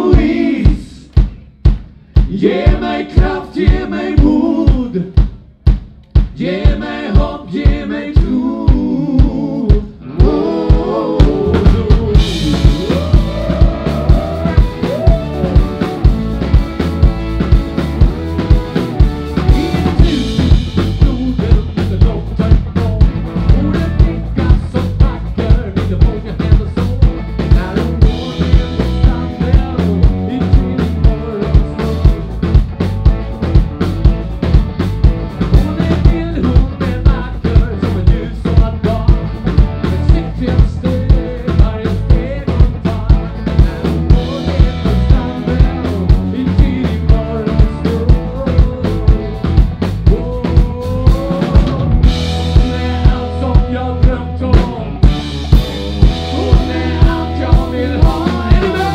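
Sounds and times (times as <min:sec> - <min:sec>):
drum kit beat: 0:00.0 - 0:58.9
rock and roll band playing: 0:00.0 - 0:58.9.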